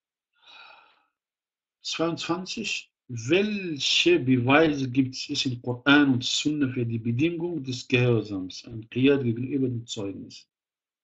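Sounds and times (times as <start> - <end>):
person breathing out: 0.4 - 1.1
person speaking: 1.9 - 10.4.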